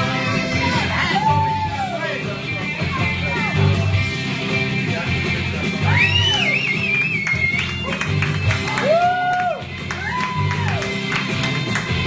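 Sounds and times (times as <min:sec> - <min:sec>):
rock backing track with guitar: 0:00.0 - 0:12.0.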